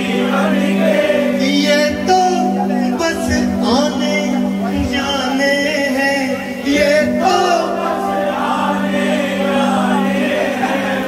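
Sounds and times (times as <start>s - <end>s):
group singing together: 0.0s - 3.7s, 6.6s - 11.0s
man singing lead: 0.0s - 11.0s.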